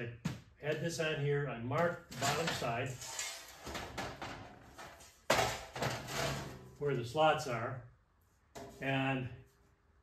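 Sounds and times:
steel sheet scraping on metal: 2.2s - 3.8s, 5.8s - 6.8s.

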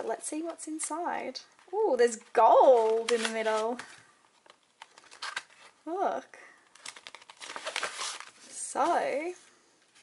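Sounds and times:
paper rustling: 2.5s - 5.8s, 6.7s - 9.3s.

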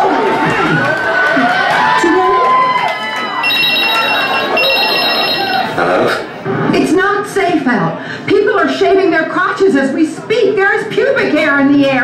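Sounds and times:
crowd voices and shouting: 0.0s - 12.0s
telephone ringing: 3.4s - 5.8s.

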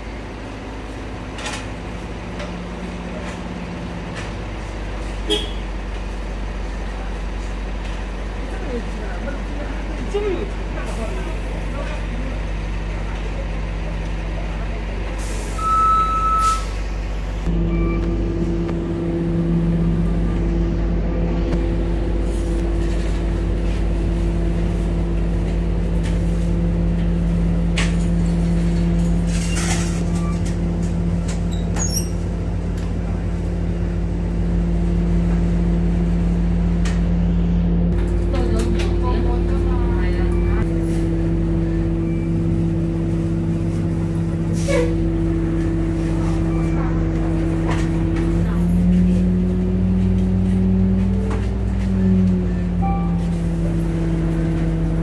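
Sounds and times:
bus engine rumble: 0.0s - 55.0s
brief beep: 15.6s - 16.7s, 17.5s - 18.2s.

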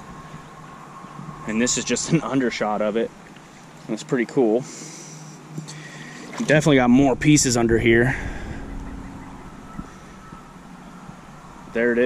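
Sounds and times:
creek water swishing: 0.0s - 12.0s.

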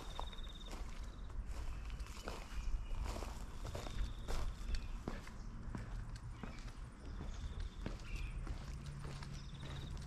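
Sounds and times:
footsteps on dry lawn: 0.0s - 10.0s.

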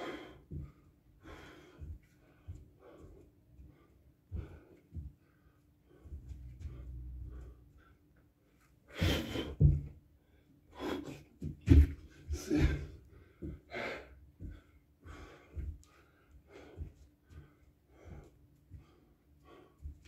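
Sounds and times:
man breathing hard: 0.0s - 20.0s.

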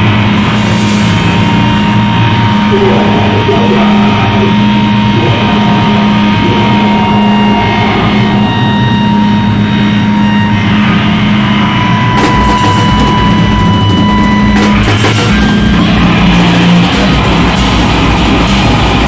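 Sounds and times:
distorted electric guitars: 0.0s - 19.0s
drums with cymbal crashes: 0.3s - 2.1s, 12.2s - 19.0s
rock band playing loudly: 12.1s - 19.0s.

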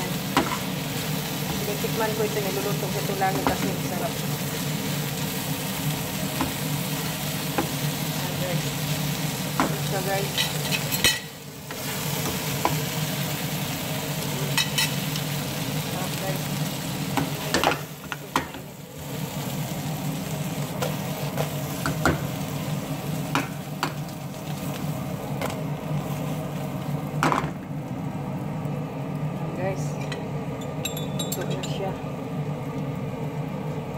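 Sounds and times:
shrimps sizzling in pan: 0.0s - 27.7s.

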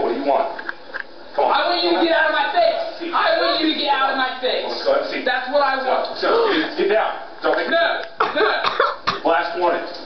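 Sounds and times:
coughing: 8.1s - 9.4s.

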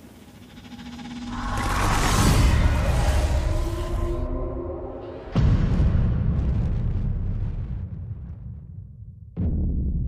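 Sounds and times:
deep cinematic boom: 1.1s - 8.6s.

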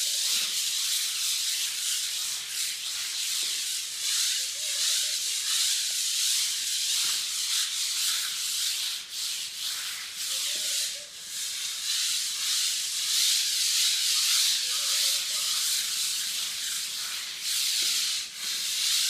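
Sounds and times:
sandpaper rasping on concrete: 0.0s - 19.0s.

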